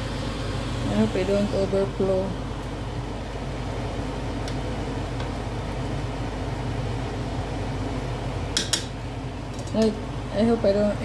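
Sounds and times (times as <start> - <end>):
low fan hum: 0.0 - 11.0.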